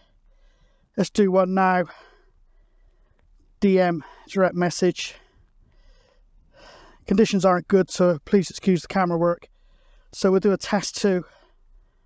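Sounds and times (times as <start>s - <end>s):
man breathing: 0.0s - 1.0s, 1.8s - 4.4s, 5.1s - 7.1s, 9.5s - 10.2s, 11.2s - 12.0s
man speaking: 1.0s - 2.1s, 3.6s - 5.3s, 7.0s - 9.5s, 10.1s - 11.4s.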